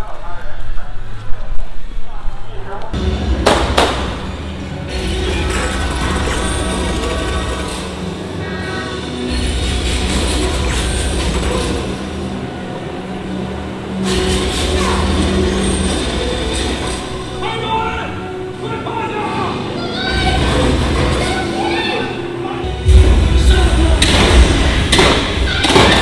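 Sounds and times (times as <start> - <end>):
boat engine drone: 3.0 - 17.4
sharp cracks: 3.4 - 4.3
soundtrack over loudspeakers: 17.0 - 26.0.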